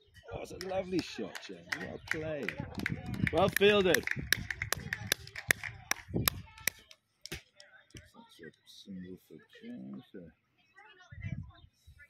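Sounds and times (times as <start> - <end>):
person clapping: 0.6 - 7.4.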